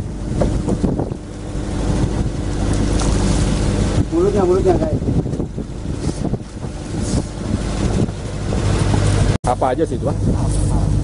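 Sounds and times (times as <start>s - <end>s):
sea noise: 0.0s - 11.0s
wind noise on microphone: 0.0s - 11.0s.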